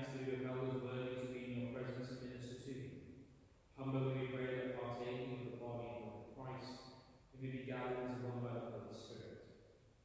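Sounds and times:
priest chanting a prayer: 0.0s - 2.9s, 3.8s - 6.8s, 7.4s - 9.3s.

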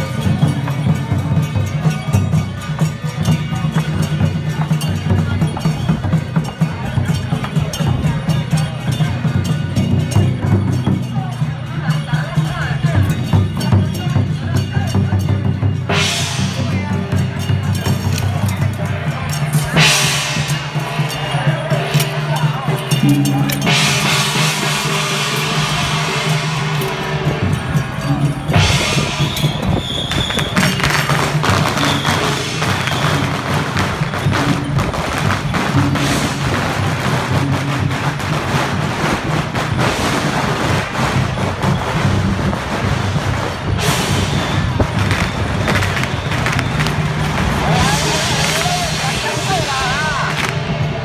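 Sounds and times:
rapid percussion strikes: 0.0s - 51.0s
voices: 0.0s - 51.0s.

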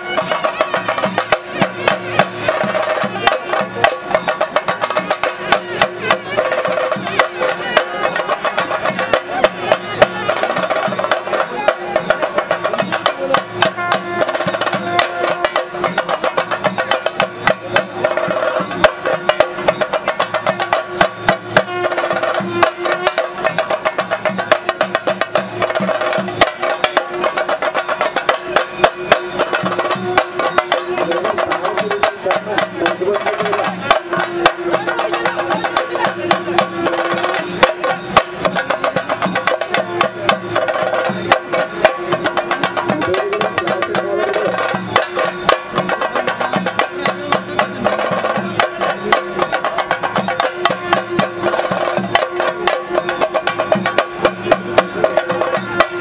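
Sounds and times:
fast ensemble drumming: 0.0s - 56.0s.

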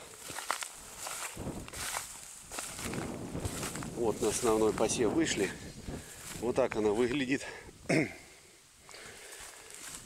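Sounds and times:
dry wheat stalks rustling: 0.0s - 7.4s, 9.2s - 10.0s
footsteps through wheat field: 0.0s - 7.4s, 9.2s - 10.0s.

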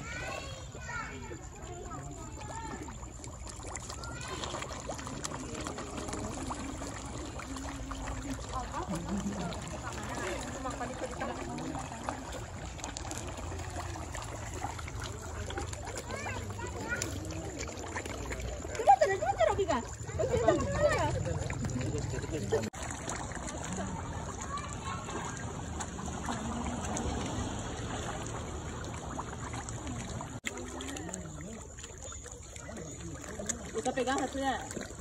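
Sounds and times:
people talking: 0.0s - 3.0s, 4.0s - 22.8s, 23.4s - 27.3s, 29.8s - 31.7s, 32.6s - 34.8s
fish splashing at surface: 0.0s - 35.0s.

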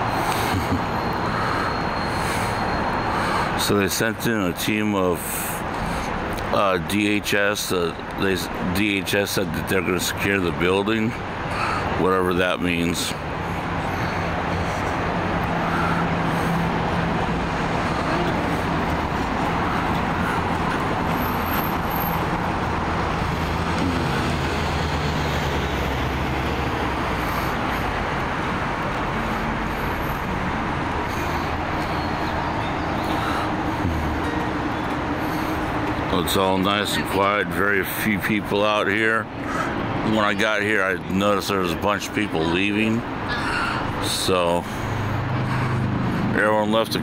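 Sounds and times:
street traffic: 0.0s - 47.0s
low engine hum: 12.7s - 38.5s.

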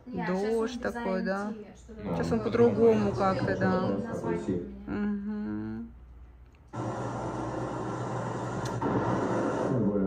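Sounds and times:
person humming: 4.8s - 6.0s.

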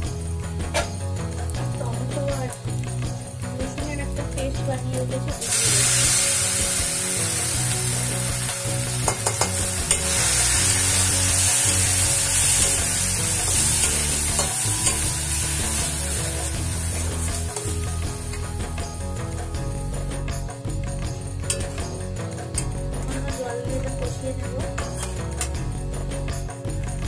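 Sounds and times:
onions sizzling in hot oil: 5.4s - 18.3s.

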